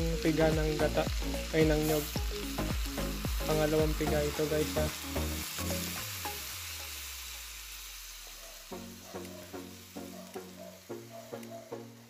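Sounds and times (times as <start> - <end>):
sizzling hiss: 0.0 - 12.0.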